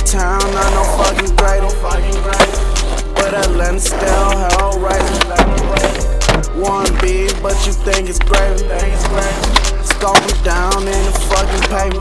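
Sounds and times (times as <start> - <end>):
hip-hop beat with deep bass: 0.0 - 12.0
skateboard rolling: 0.1 - 12.0
skateboard clacks: 0.7 - 12.0.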